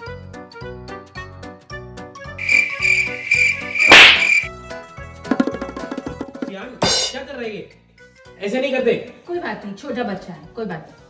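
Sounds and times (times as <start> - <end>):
high buzzing insect tone: 2.4 - 4.5.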